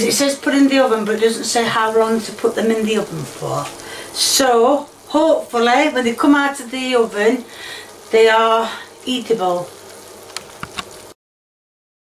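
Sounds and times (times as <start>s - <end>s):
faint hiss: 0.0s - 11.2s
small clicks: 9.9s - 11.1s.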